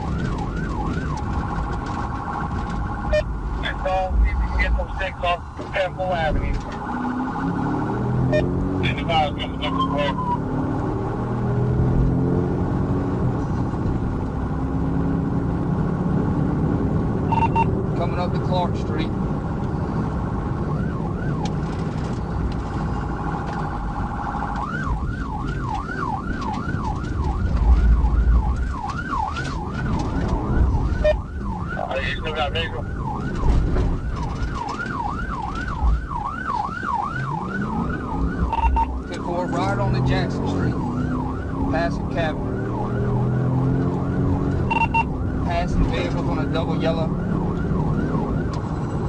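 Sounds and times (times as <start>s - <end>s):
police siren wailing and yelping: 0.0s - 11.2s, 17.3s - 17.8s, 19.7s - 49.0s
car engine and road noise: 0.0s - 49.0s.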